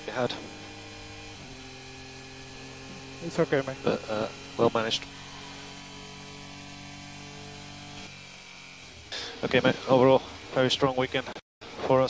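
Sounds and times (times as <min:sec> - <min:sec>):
electrical hum and buzz: 0:00.0 - 0:11.8.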